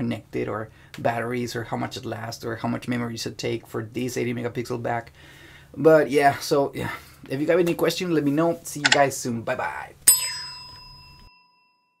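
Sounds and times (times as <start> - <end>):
bright bell ding: 10.1 - 11.9.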